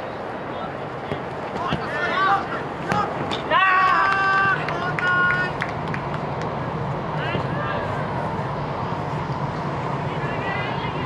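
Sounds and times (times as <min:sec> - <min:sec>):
steady background hum: 0:00.0 - 0:11.0
players shouting: 0:01.0 - 0:05.6.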